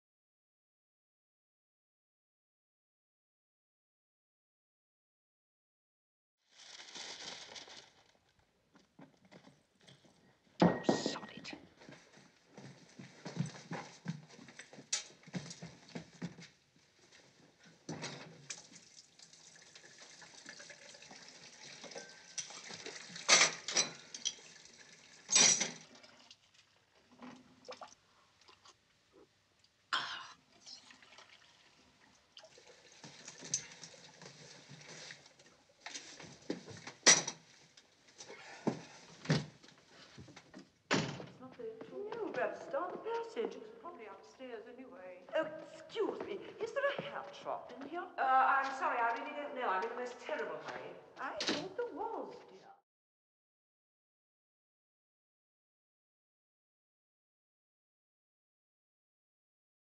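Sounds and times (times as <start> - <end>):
crockery clattering: 10.6 - 11.3, 23.3 - 24.4, 25.3 - 25.8.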